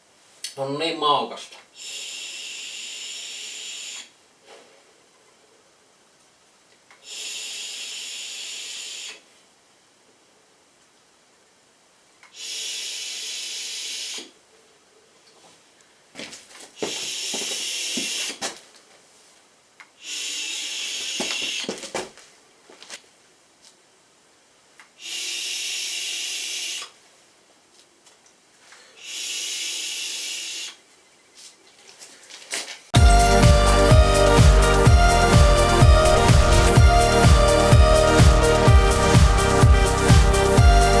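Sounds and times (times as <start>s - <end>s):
hiss of vapour jet: 1.8s - 4.1s, 7.0s - 9.2s, 12.3s - 14.3s, 16.8s - 18.4s, 20.0s - 21.7s, 28.9s - 30.8s.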